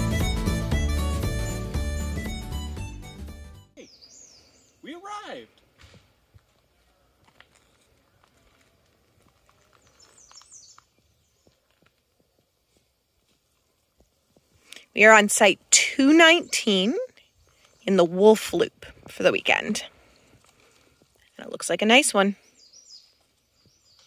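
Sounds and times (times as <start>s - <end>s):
acoustic guitar music: 0.0s - 3.8s
bird chirping: 3.8s - 5.2s, 9.7s - 11.6s, 16.0s - 18.2s, 22.4s - 24.0s
rising and falling bird call: 3.8s - 5.2s.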